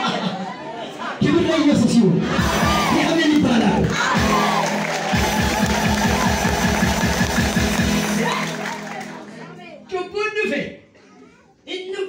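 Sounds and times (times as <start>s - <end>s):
music with fast steady beat: 3.6s - 9.5s.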